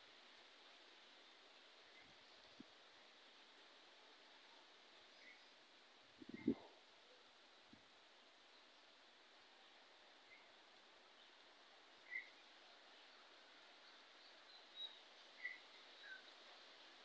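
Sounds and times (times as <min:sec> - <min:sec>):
outdoor hiss: 0:00.0 - 0:17.0
bird chirping: 0:06.3 - 0:06.7, 0:12.0 - 0:13.1, 0:13.8 - 0:16.4.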